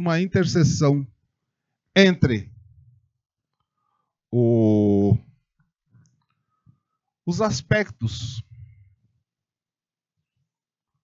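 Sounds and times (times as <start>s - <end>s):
man holding long o sound: 4.3s - 5.2s.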